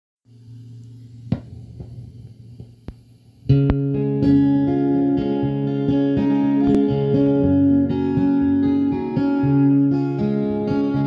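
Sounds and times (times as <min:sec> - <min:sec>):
low electrical hum: 0:00.3 - 0:11.0.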